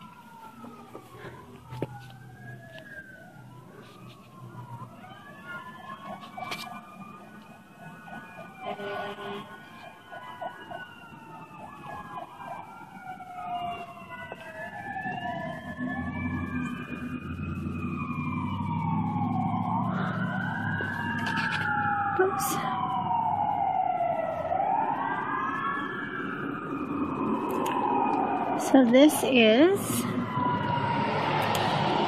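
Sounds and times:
emergency sirens wailing: 0.0s - 32.0s.

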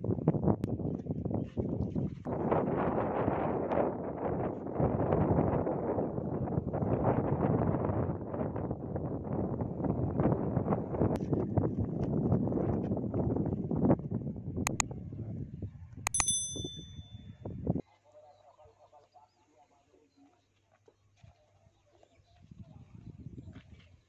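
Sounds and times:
wind buffeting microphone: 0.0s - 15.8s, 22.4s - 23.8s.

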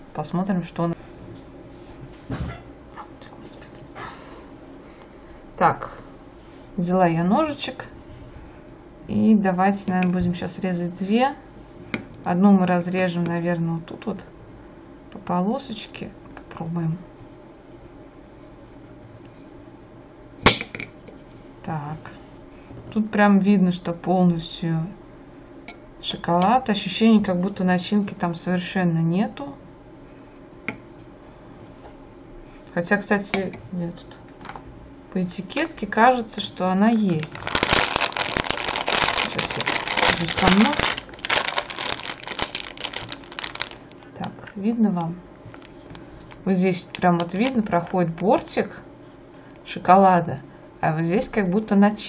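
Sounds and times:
plastic bag crinkling: 36.9s - 44.5s.

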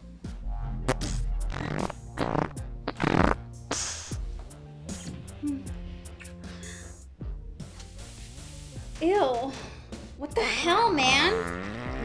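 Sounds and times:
background music: 0.0s - 12.0s
farts: 0.7s - 4.2s, 11.0s - 12.0s.

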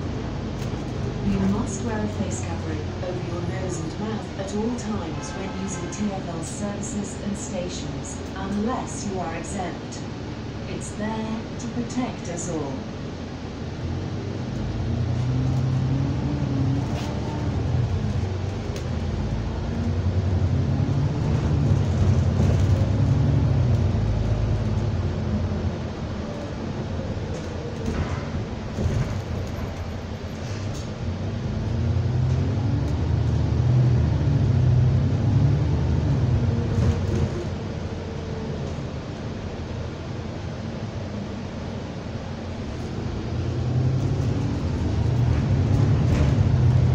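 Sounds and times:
bus engine rumble: 0.0s - 46.9s.

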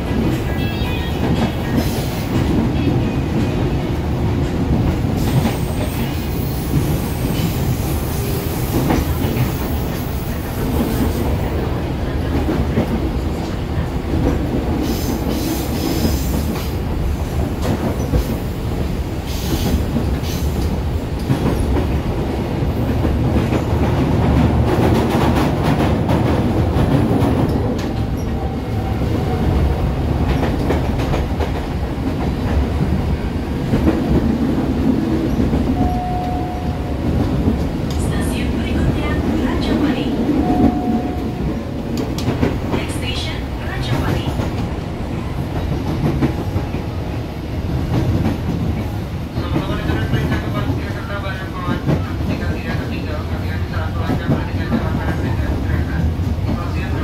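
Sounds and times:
train wheels rumbling on rail: 0.0s - 57.0s
short high tones: 35.8s - 37.0s.

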